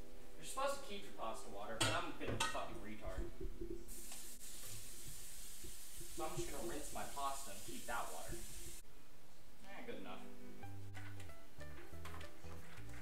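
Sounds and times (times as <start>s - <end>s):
water running onto pasta: 3.6s - 8.8s.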